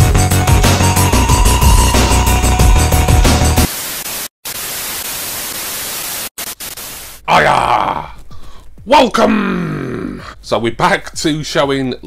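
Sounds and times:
television static hiss: 3.7 - 7.3.

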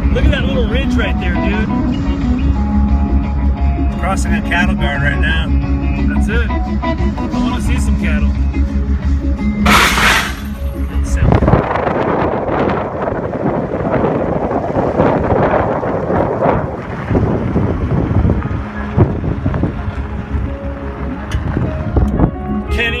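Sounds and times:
music from car stereo: 0.0 - 11.6, 19.0 - 23.0
tyre noise on gravel road: 9.7 - 10.6
wind buffeting microphone: 11.1 - 22.7.

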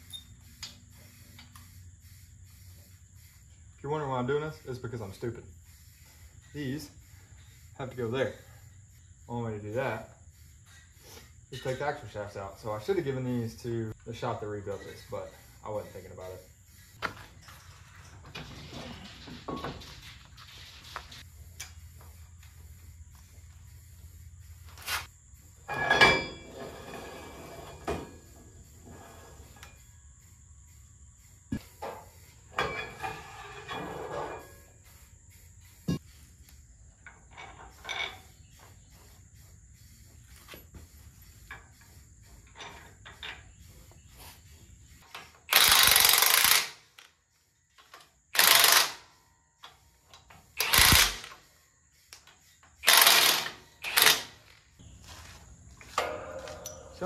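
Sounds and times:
power tool bursts: 45.5 - 46.8, 48.4 - 49.0, 50.6 - 51.3, 52.8 - 54.3.

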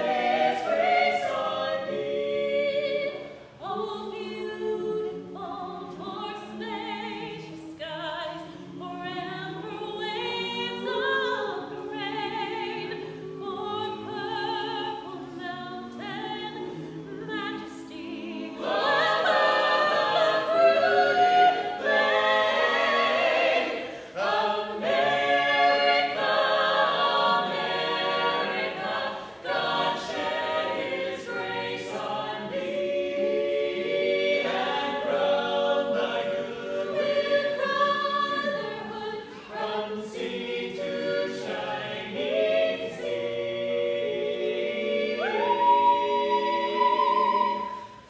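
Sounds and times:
choir singing a cappella: 0.0 - 48.0
singers breathing: 23.8 - 24.2.

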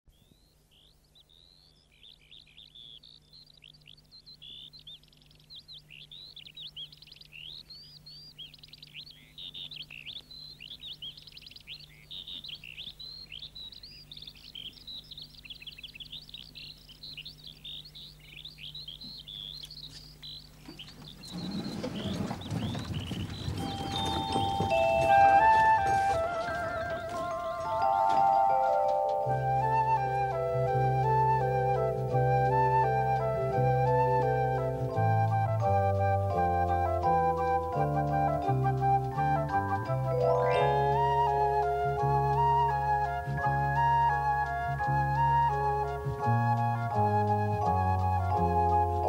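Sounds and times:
faint steady hum: 0.1 - 49.0
songbirds chirping: 0.1 - 49.0
rustling noise: 19.9 - 30.4
music with high notes: 24.0 - 49.0.

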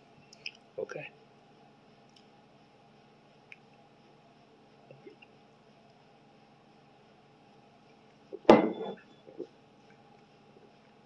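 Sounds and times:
bottle clunk on hard surface: 8.4 - 9.0.

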